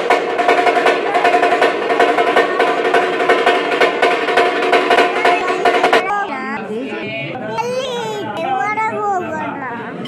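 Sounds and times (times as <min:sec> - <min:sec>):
fast drumming: 0:00.0 - 0:06.3.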